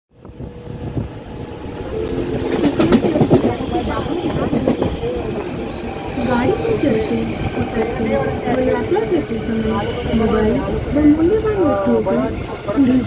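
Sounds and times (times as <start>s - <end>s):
train rumble and motor tone: 0.1s - 13.0s
voices: 1.9s - 13.0s.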